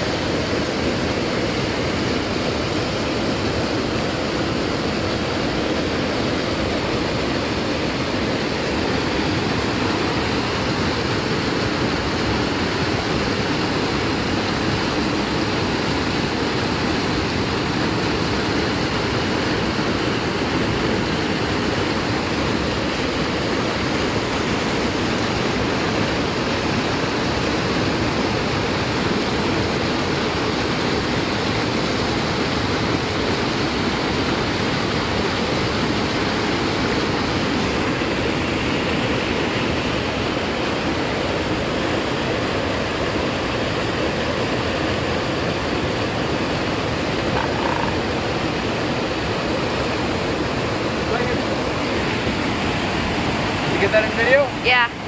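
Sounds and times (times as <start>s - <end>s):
mountain stream rushing over boulders: 0.0s - 55.0s.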